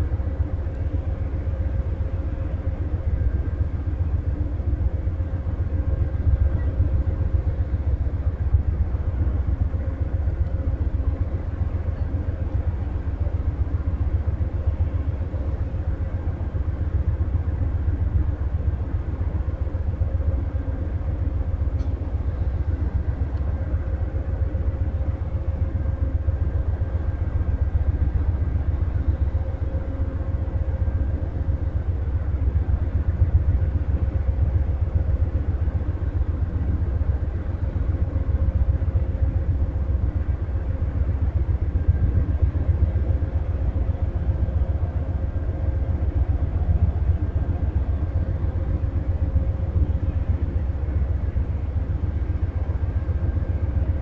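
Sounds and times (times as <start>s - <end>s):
faint hum: 0.0s - 54.0s
train idling low rumble: 0.0s - 54.0s.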